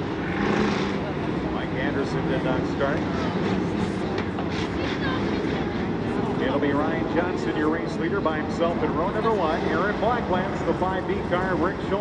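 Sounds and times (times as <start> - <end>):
single engine revving: 0.0 - 1.4
race car engines rumbling: 0.0 - 12.0.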